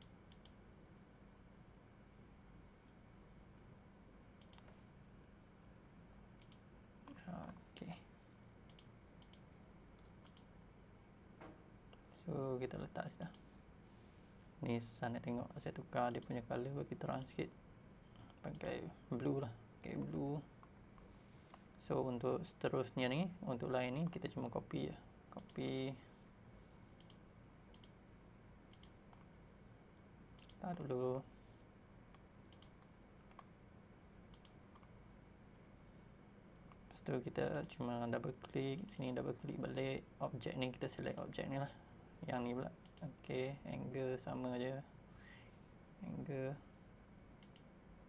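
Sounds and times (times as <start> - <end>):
computer mouse clicks: 0.0 - 0.6, 4.4 - 4.8, 6.4 - 6.7, 8.4 - 10.5, 13.1 - 13.4, 16.1 - 16.4, 17.1 - 17.4, 18.2 - 18.8, 25.4 - 25.9, 27.0 - 28.0, 28.7 - 29.3, 30.4 - 30.7, 32.1 - 33.5, 34.3 - 35.0, 41.0 - 41.3, 42.8 - 43.1, 47.4 - 47.7
faint low hum: 0.0 - 48.0.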